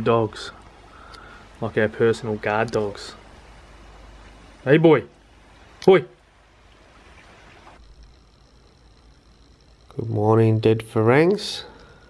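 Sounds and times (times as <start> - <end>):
background hiss: 0.0 - 12.0
faint high steady whine: 0.0 - 12.0
low rumble: 3.1 - 12.0.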